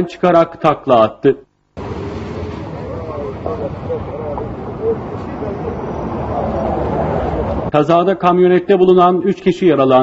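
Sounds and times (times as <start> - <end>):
steady rumbling noise: 1.8 - 7.8
people talking: 2.4 - 7.0.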